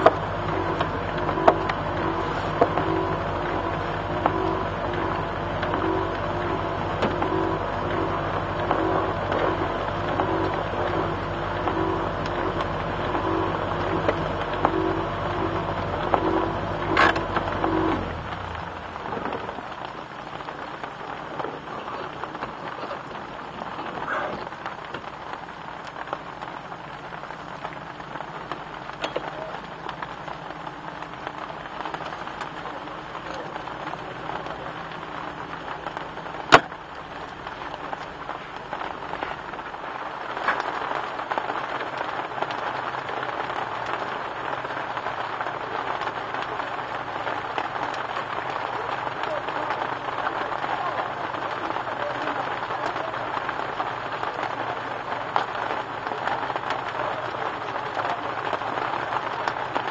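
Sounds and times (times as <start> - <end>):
rain falling on car bonnet: 0.0 - 59.9.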